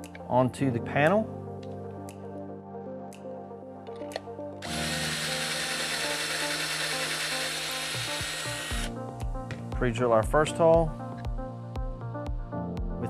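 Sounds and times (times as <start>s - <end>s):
soft background music: 0.0s - 13.0s
cordless drill running: 4.6s - 8.9s.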